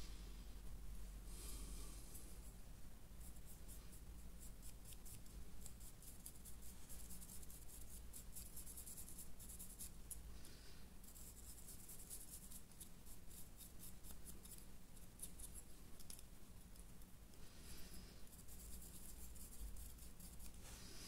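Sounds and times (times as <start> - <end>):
dry brush scratching stone: 3.2 - 10.2, 11.0 - 16.1, 18.3 - 20.8.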